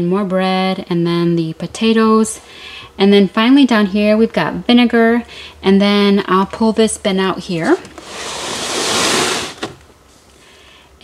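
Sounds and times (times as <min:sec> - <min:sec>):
plastic bin scraping: 0:07.6 - 0:09.8.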